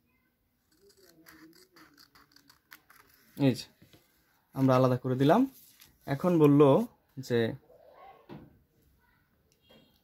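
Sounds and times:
scissors snipping paper: 0.7s - 3.4s.

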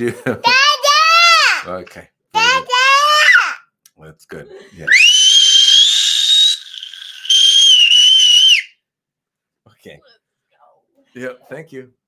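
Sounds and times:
toddler screaming: 2.4s - 3.6s, 4.9s - 8.7s.

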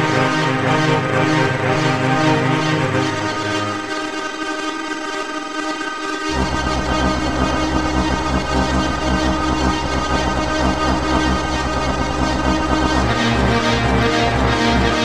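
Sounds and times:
synthesized orchestra chord: 0.0s - 15.0s
deep fluttering bass drone: 6.3s - 15.0s.

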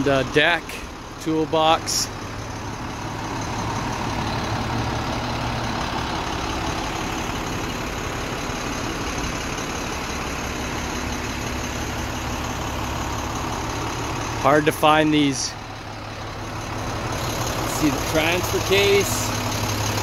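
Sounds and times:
diesel truck engine idling: 0.0s - 20.0s.

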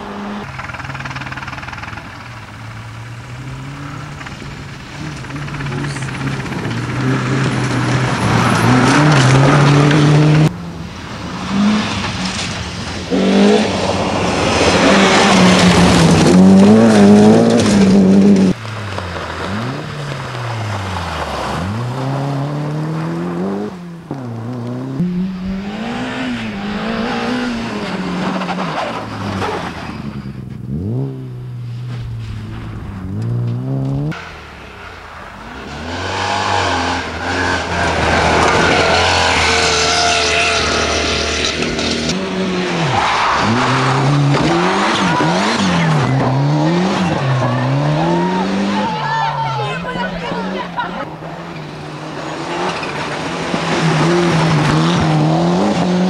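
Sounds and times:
rally car engines revving: 0.0s - 56.0s
tyre and gravel noise: 0.3s - 56.0s.

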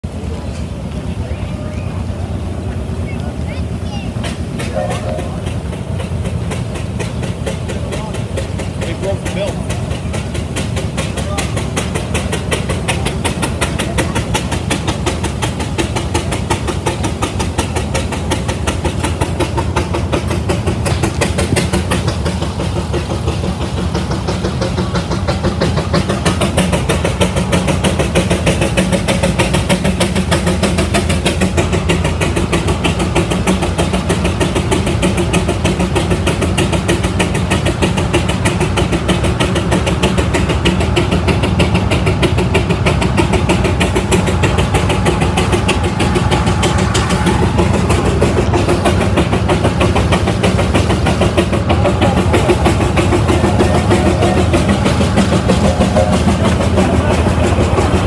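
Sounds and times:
steam traction engine running: 0.0s - 58.0s.

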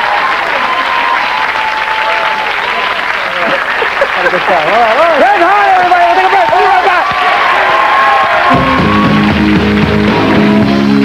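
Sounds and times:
audience applauding and cheering: 0.0s - 11.0s
band playing: 8.4s - 11.0s.

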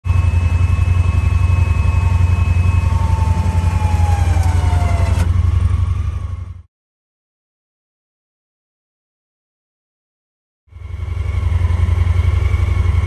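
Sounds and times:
engine pulsing low rumble: 0.0s - 6.7s, 10.7s - 13.0s
winch whining: 0.1s - 6.4s.

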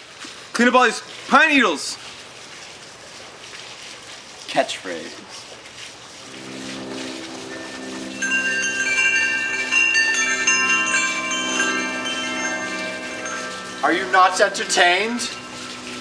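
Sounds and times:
low steady tone: 6.2s - 16.0s
metal wind chime ringing: 6.3s - 16.0s.

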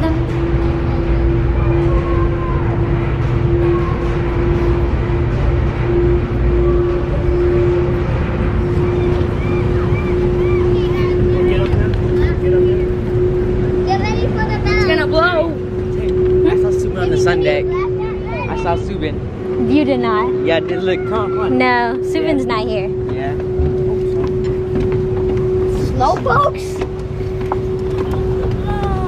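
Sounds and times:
high wavering voices: 0.0s - 29.0s
ship engines rumbling: 0.0s - 29.0s.

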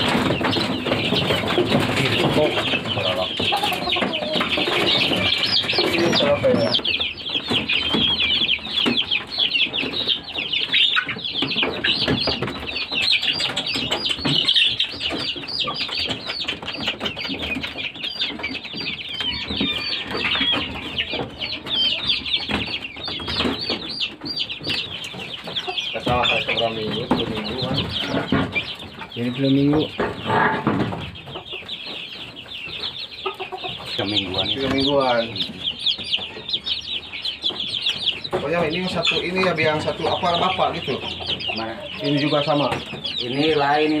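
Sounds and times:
low clucks: 0.0s - 44.0s
young chickens peeping: 0.0s - 44.0s.

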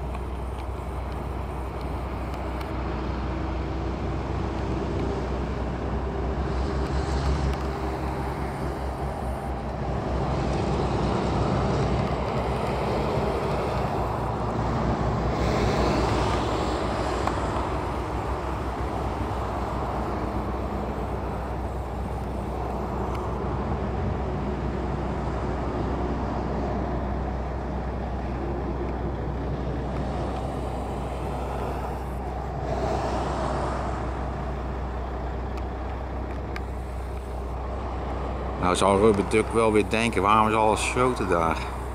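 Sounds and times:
highway traffic: 0.0s - 41.9s.

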